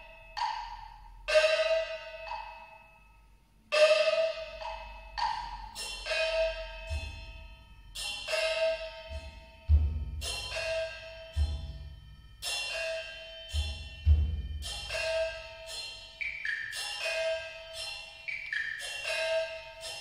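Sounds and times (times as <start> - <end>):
small pitched gongs ringing: 0.0 - 20.0
deep barrel drum strokes: 9.1 - 12.0.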